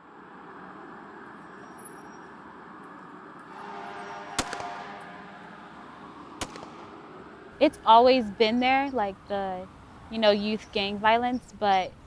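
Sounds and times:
night ambience with low hiss: 0.0s - 12.0s
sharp cracks: 4.3s - 5.3s, 6.4s - 7.5s.

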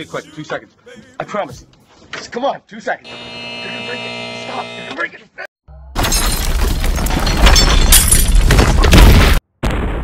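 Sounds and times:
crash with shattering: 6.0s - 10.0s.

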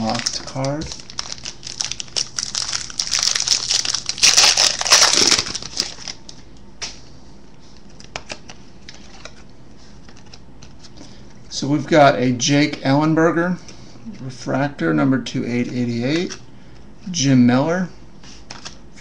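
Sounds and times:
wrapper tearing and crinkling: 0.0s - 6.2s.

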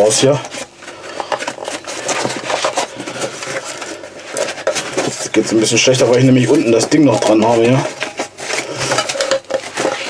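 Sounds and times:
canteen rustling in fabric pouch: 0.2s - 10.0s.

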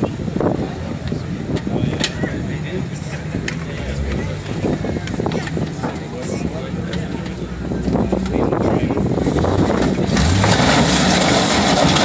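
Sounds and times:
engine revving hard: 9.2s - 12.0s
car body crunching: 9.4s - 12.0s.

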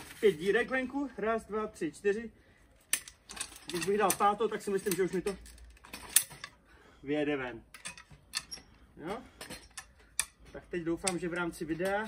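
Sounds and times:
metal clicks and rattles: 2.8s - 6.6s, 7.7s - 8.8s, 9.4s - 12.0s.

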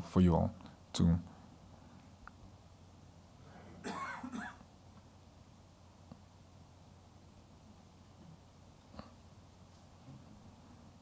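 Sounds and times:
person coughing: 3.8s - 4.6s.

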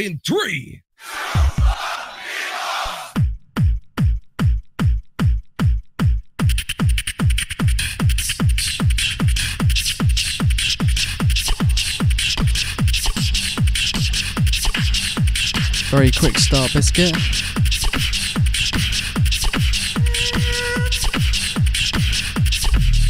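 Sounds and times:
beatbox deep kick pattern: 11.4s - 19.7s
beatbox high clicks and hiss: 15.5s - 17.4s.

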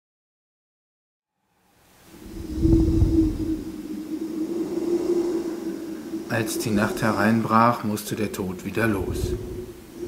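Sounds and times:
low ambient drone: 2.0s - 10.0s
steady low hum: 2.1s - 10.0s
deep rumble: 2.2s - 7.5s, 8.9s - 10.0s.

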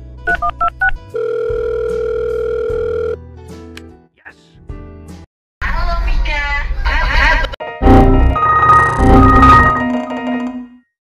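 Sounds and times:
phone ringing tone: 0.3s - 3.2s.

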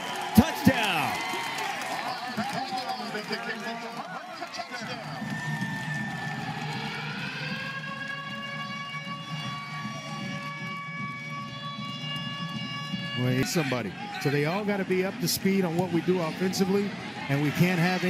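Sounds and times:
murmur of voices: 13.1s - 18.0s.

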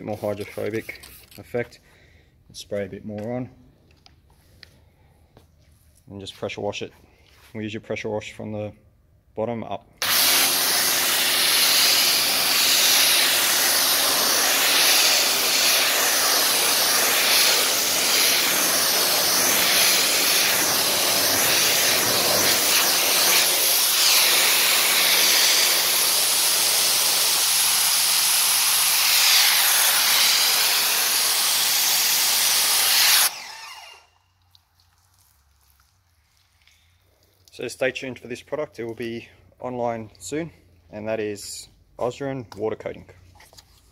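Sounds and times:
pressure washer spraying car: 10.0s - 34.0s.

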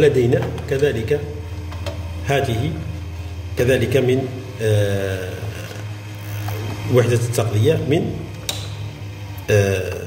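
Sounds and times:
low electrical hum: 0.0s - 10.0s
sharp click: 8.4s - 8.8s
man hesitating: 9.5s - 10.0s.

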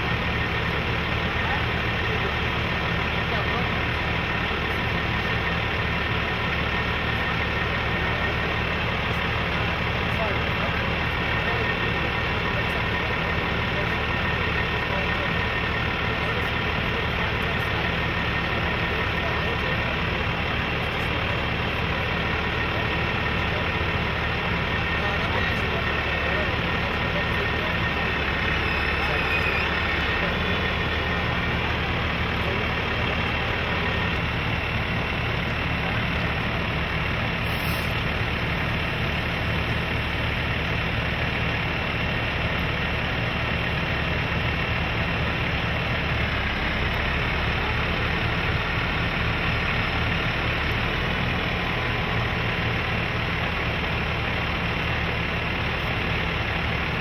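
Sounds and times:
diesel engine idling: 0.0s - 57.0s.

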